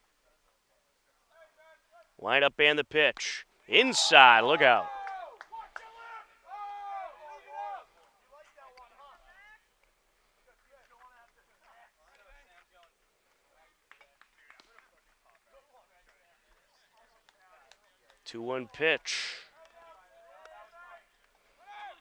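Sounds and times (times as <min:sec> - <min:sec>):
distant voices calling out: 0:02.3 - 0:04.9.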